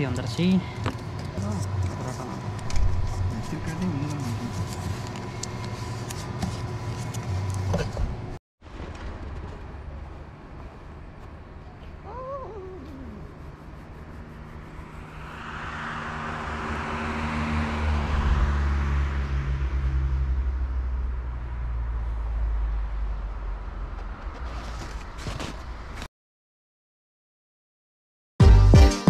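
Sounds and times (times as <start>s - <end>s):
vehicle passing on road: 13.1s - 26.0s.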